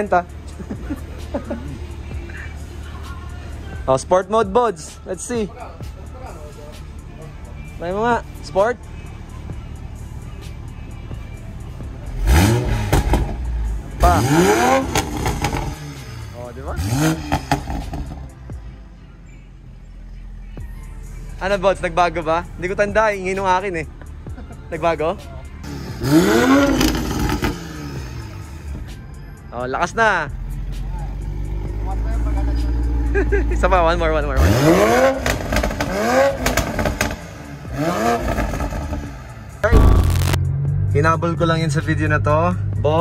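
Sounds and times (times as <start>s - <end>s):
car engine idling and revving: 0.0s - 43.0s.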